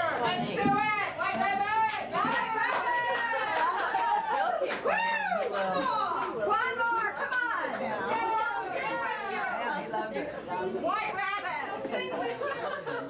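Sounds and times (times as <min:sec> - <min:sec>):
indistinct chatter: 0:00.0 - 0:13.0.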